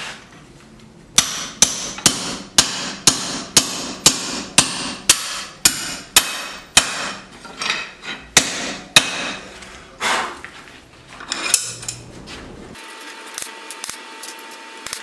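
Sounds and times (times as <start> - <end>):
hammer striking punch on hot steel: 1.2 - 7.3, 8.3 - 9.5.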